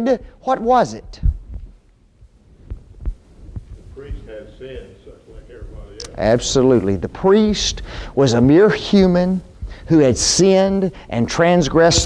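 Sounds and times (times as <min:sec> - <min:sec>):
soft low thumps: 0:01.0 - 0:11.0
low hum: 0:01.1 - 0:07.9.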